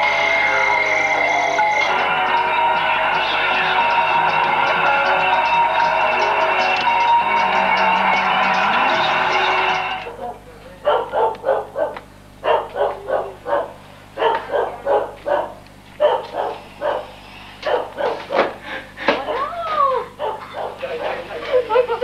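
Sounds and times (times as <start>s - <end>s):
music playing: 0.0s - 10.1s
small dog yapping: 10.1s - 18.5s, 19.2s - 20.8s.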